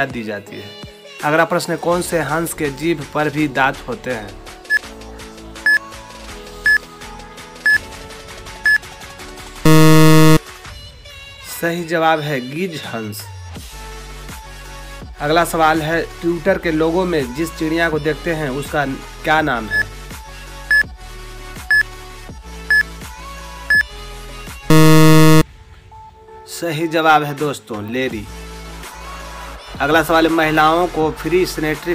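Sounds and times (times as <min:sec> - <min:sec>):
loud buzzer: 0:09.7 - 0:10.4, 0:24.7 - 0:25.4
short timer beeps: 0:09.7 - 0:10.4, 0:24.7 - 0:25.4.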